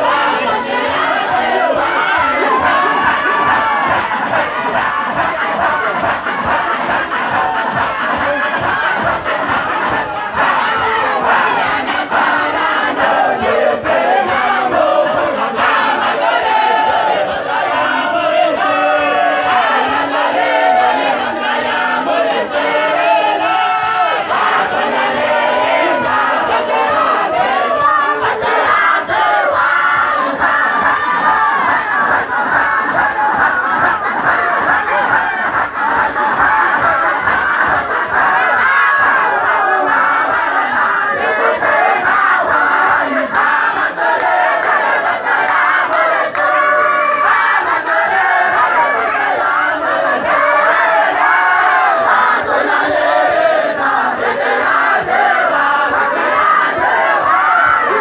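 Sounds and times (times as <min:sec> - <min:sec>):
men chanting together: 0:00.0 - 0:58.0.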